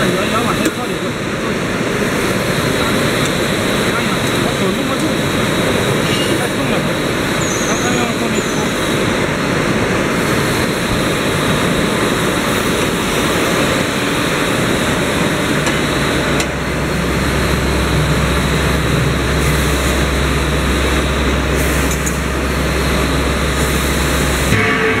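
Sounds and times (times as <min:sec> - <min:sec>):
factory machinery noise: 0:00.0 - 0:25.0
low machine hum: 0:08.8 - 0:25.0.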